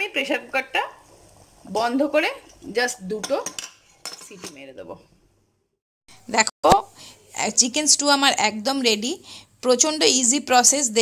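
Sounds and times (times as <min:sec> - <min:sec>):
pot lid scraping and clinking: 0:03.2 - 0:04.7.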